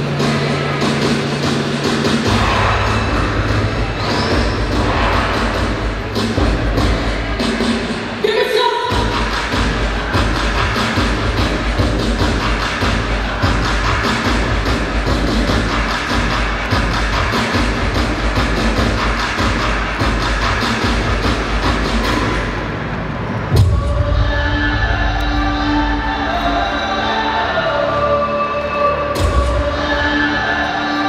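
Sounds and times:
loud dance music: 0:00.0 - 0:31.0.

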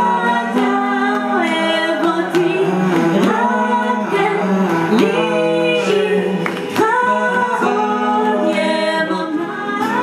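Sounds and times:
hand claps or guitar strums: 0:00.0 - 0:08.7
people singing in harmony: 0:00.0 - 0:10.0.

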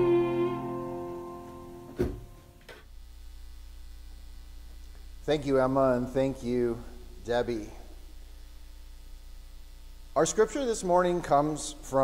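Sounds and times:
electronic keyboard chord: 0:00.0 - 0:02.6
low mains hum: 0:00.0 - 0:12.0.

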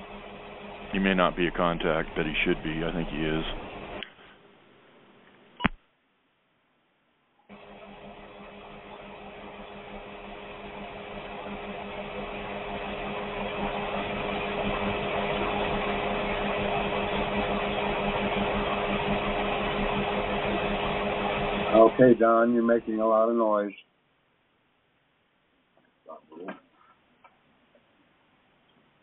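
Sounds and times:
steady hum on phone line: 0:00.0 - 0:05.8, 0:07.5 - 0:23.7.

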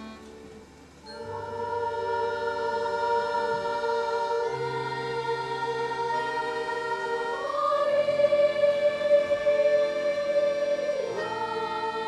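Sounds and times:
accordion ensemble: 0:00.0 - 0:12.0
children's choir singing: 0:01.0 - 0:12.0.

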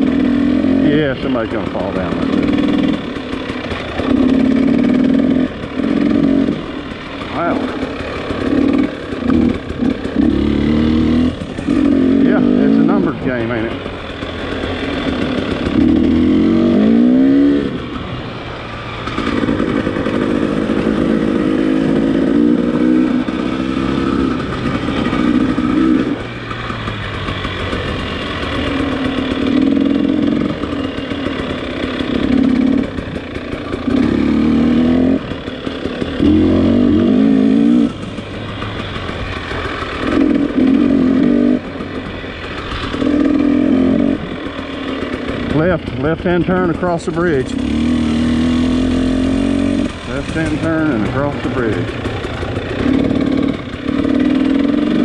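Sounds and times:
dirt bike engine revving: 0:00.0 - 0:55.0.

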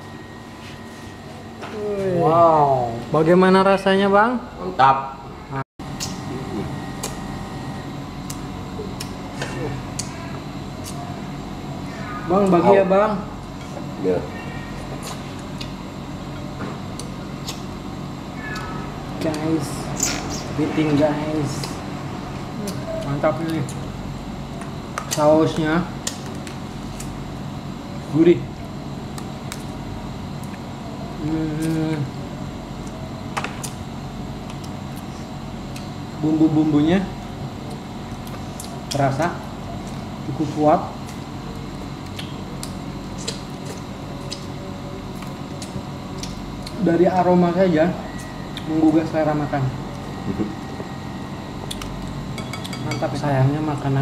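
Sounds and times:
steady low hum: 0:00.0 - 0:54.0
person humming mmm: 0:31.2 - 0:32.1.

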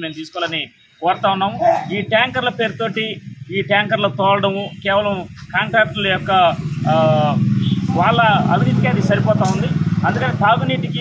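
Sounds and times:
man talking: 0:00.0 - 0:11.0
vehicle engine droning: 0:02.0 - 0:11.0.

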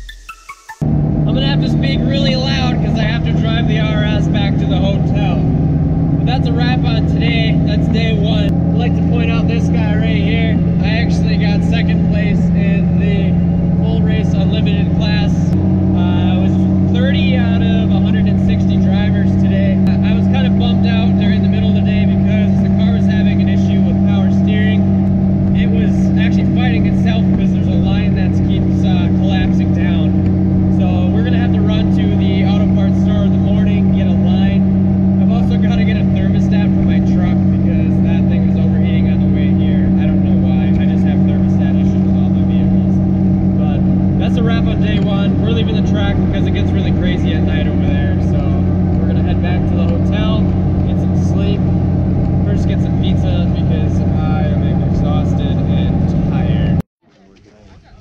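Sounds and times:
car engine and road drone: 0:00.0 - 0:56.9
man talking: 0:01.2 - 0:05.5, 0:06.2 - 0:51.7, 0:52.4 - 0:58.0.

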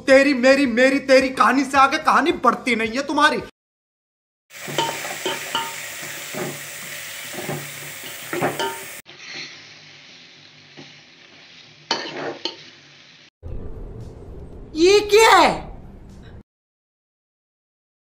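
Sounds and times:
chicken sizzling in a pot: 0:04.5 - 0:13.3
spoon knocking and scraping pot: 0:04.6 - 0:06.6, 0:07.3 - 0:07.7, 0:08.3 - 0:08.9.

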